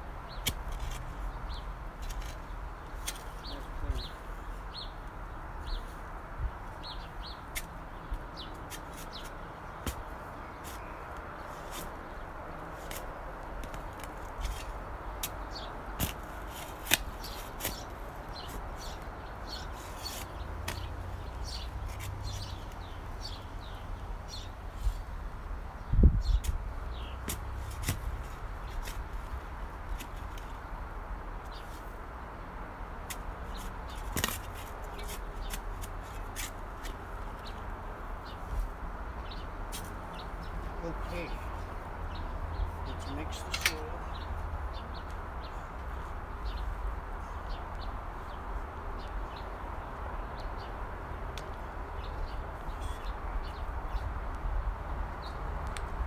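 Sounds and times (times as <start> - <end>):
small birds chirping: 0.2 - 56.0
shovel digging in dry soil: 0.3 - 1.2, 2.0 - 3.8, 8.6 - 10.9, 12.7 - 22.6, 27.2 - 30.5, 33.0 - 37.0, 39.7 - 40.0.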